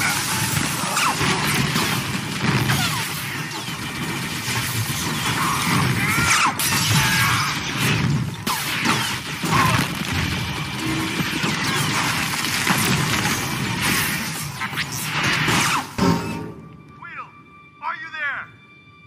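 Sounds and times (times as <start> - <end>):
blaster shots and zaps: 0.0 - 16.0
impacts and shattering debris: 0.0 - 16.6
background music: 0.0 - 19.0.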